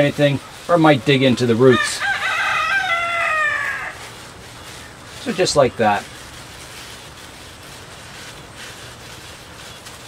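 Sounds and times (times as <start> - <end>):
rooster crowing: 1.7 - 4.1.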